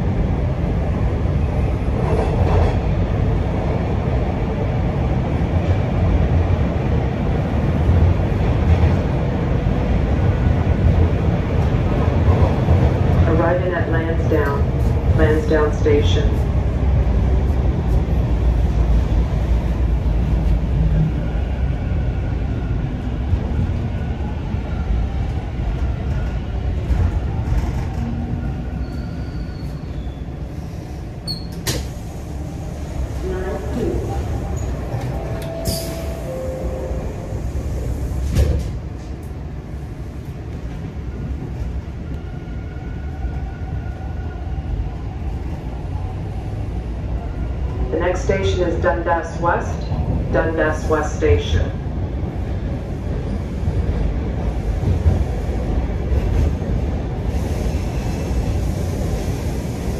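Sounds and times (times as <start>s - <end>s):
subway train rumble: 0.0s - 59.9s
train doors closing thud: 31.4s - 32.0s.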